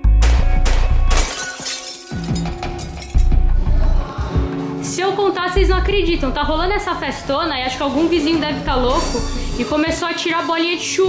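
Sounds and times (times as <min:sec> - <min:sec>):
background music: 0:00.0 - 0:11.0
glass shattering: 0:00.2 - 0:03.4.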